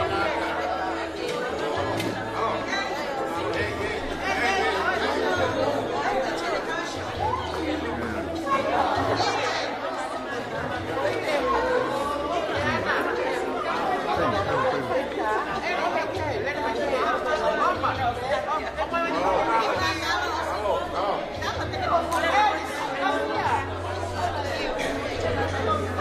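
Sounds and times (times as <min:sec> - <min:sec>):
crowd chatter in a hall: 0:00.0 - 0:26.0.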